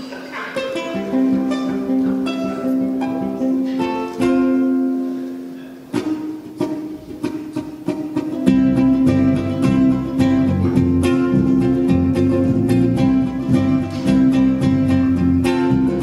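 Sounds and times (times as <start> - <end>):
ukulele playing: 0.0 - 16.0
electric bass guitar: 8.4 - 16.0.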